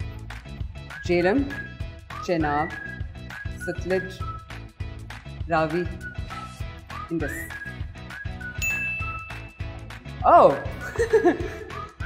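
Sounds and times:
background music with beat: 0.0s - 12.0s
bright electronic ding: 8.6s - 9.6s.

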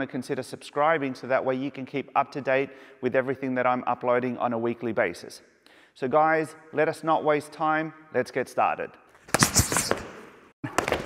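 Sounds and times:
hands slapping and blocking: 9.3s - 10.2s.

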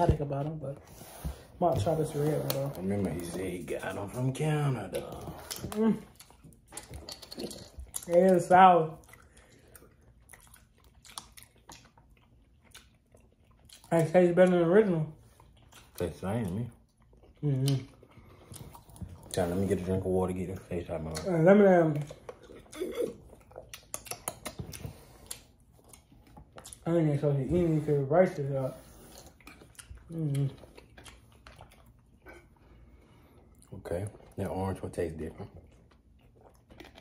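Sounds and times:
chewing gummy snack: 0.0s - 37.0s.

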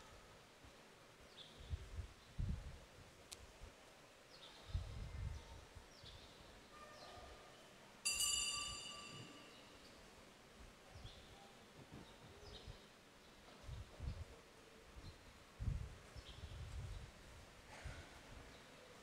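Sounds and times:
high ringing clink: 8.0s - 9.9s.

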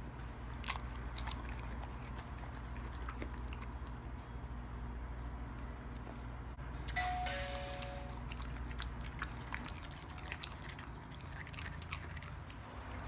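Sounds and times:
dog licking its mouth: 0.5s - 4.2s, 8.1s - 12.6s
two-note descending chime: 7.0s - 8.1s.

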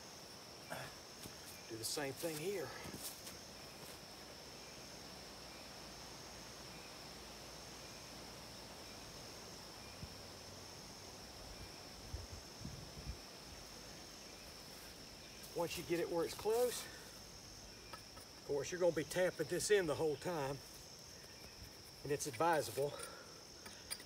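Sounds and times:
insects chirring: 0.0s - 24.0s.

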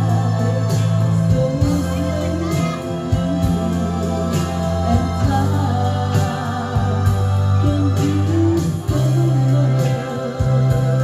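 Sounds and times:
bass line: 0.0s - 11.0s
organ-like keyboard chords: 0.0s - 11.0s
steady beat: 0.0s - 11.0s
woman singing into microphone: 0.0s - 11.0s.

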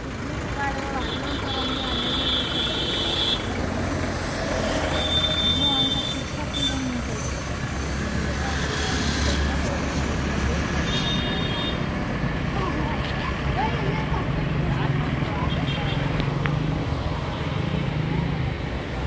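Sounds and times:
vehicle engine humming: 0.0s - 19.0s
voices: 0.0s - 19.0s.

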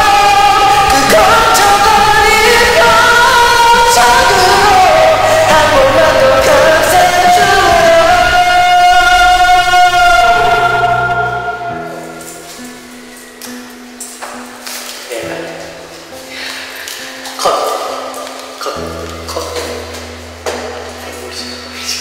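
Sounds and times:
man singing a long note: 0.0s - 12.4s
karaoke ballad backing track: 0.0s - 22.0s.

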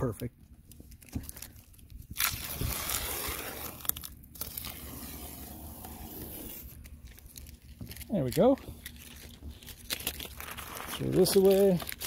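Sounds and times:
masking tape being peeled: 0.7s - 12.0s.

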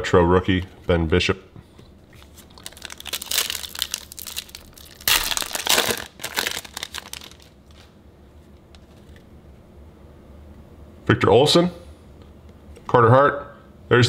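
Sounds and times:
foil wrapper crinkling: 2.1s - 8.0s.

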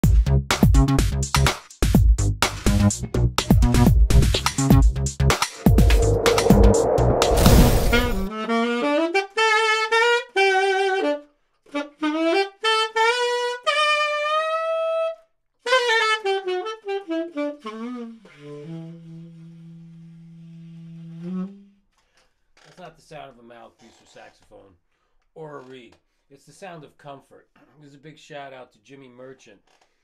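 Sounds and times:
tenor saxophone playing: 8.3s - 11.2s, 15.7s - 19.4s.

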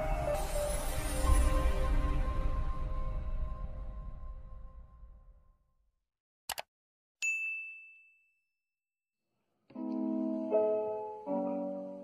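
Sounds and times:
bright bell ding: 7.2s - 8.4s.

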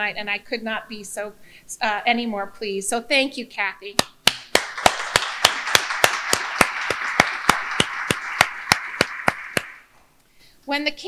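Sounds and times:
loud hand claps near microphone: 4.0s - 9.9s
audience clapping: 4.3s - 9.9s.

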